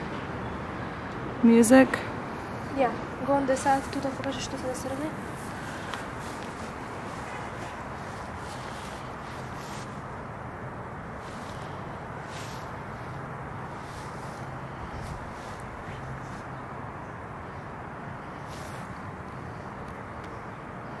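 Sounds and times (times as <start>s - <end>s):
faint rustles: 3.6s - 10.2s, 11.1s - 16.7s.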